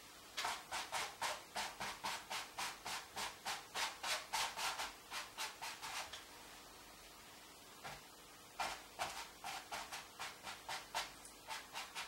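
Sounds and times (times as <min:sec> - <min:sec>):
brush swishing on canvas: 0:00.4 - 0:06.2, 0:08.6 - 0:12.0.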